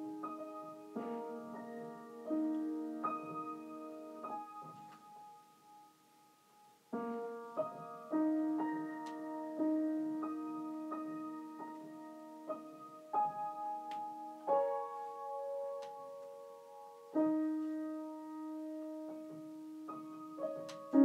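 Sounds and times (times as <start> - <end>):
solo piano: 0.0 - 21.0.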